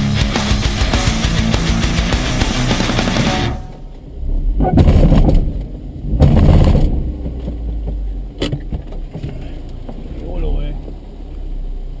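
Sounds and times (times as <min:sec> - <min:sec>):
car engine idling: 0:00.0 - 0:12.0
loud rushing burst: 0:00.2 - 0:07.1.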